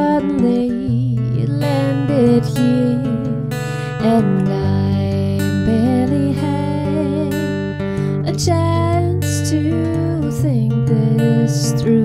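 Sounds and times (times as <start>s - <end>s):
strummed acoustic guitar: 0.0s - 12.0s.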